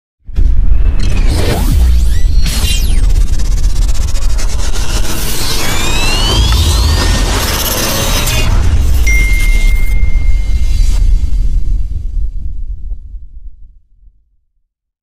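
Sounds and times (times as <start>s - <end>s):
whooshes: 0.3s - 13.7s
rising synth sweeps: 1.1s - 11.3s
loud electronic music: 2.7s - 11.0s.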